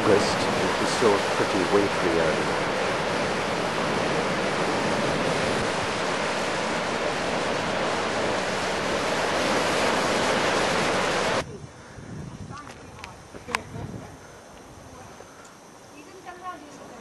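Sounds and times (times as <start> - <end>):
sea surf breaking over rocks: 0.0 - 11.4.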